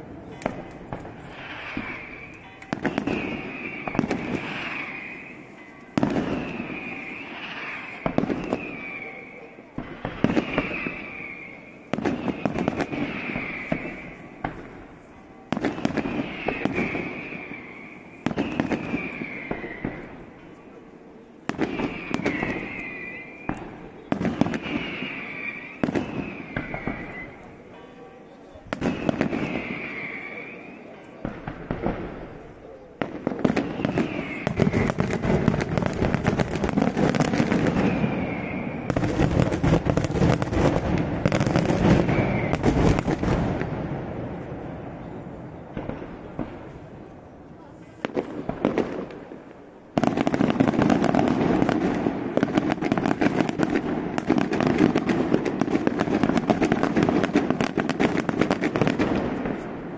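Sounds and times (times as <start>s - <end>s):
firework whistle: 0.0s - 20.7s, 21.5s - 27.8s, 28.7s - 46.9s
firework crackle: 0.0s - 27.8s, 28.7s - 59.9s
fireworks bangs: 0.0s - 59.9s.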